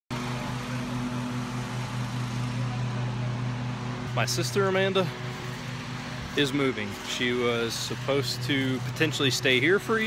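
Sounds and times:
low mechanical hum: 0.1s - 10.0s.

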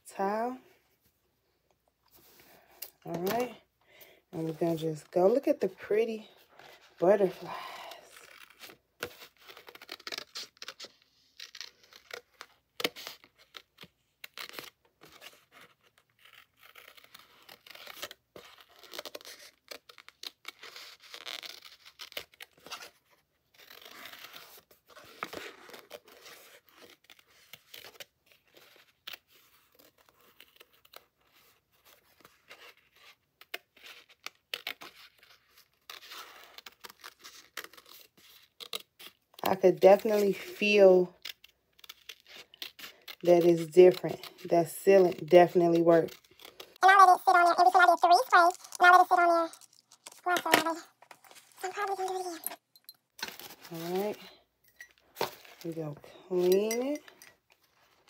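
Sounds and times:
scissors snipping paper: 40.0s - 52.6s.

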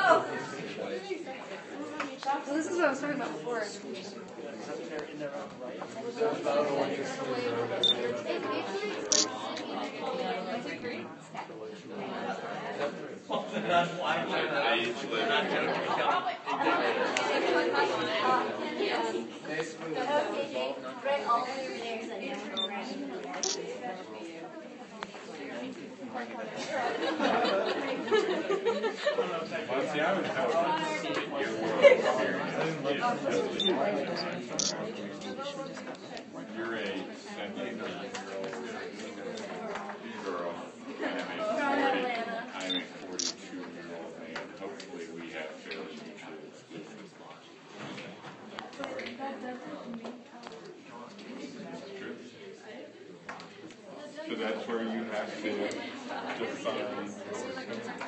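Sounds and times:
overlapping chatter of people: 0.0s - 58.0s.

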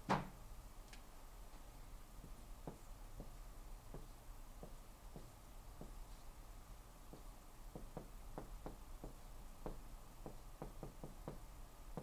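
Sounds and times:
marker writing on whiteboard: 2.2s - 6.3s.

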